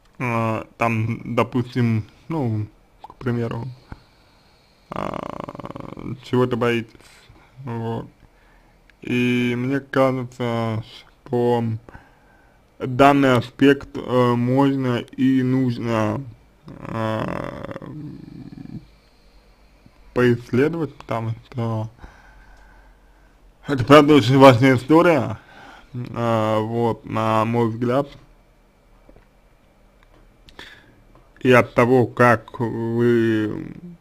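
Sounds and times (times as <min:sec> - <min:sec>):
man saying eh in creaky voice: 0:00.2 - 0:03.8, 0:04.9 - 0:08.1, 0:09.0 - 0:11.9, 0:12.8 - 0:18.9, 0:20.2 - 0:21.9, 0:26.0 - 0:28.2, 0:31.4 - 0:34.0
man's creaky hesitation sound: 0:04.9 - 0:07.0, 0:15.0 - 0:19.0.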